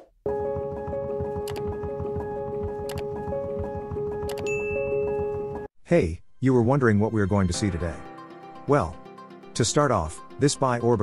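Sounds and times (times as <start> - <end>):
background music with steady beat: 0.3 - 5.7.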